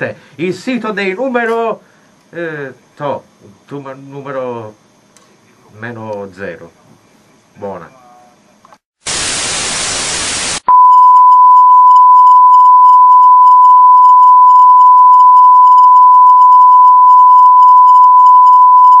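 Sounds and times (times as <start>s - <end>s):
television static hiss: 0.0s - 10.7s.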